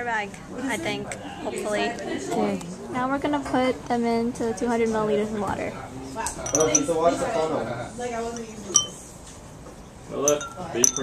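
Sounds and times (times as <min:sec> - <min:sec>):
light clinks against glass beaker: 0:06.4 - 0:07.2, 0:08.3 - 0:09.0, 0:10.2 - 0:11.0.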